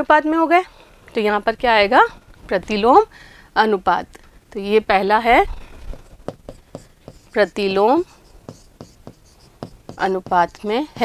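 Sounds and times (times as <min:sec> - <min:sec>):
marker pen writing on board: 0:05.9 - 0:11.0.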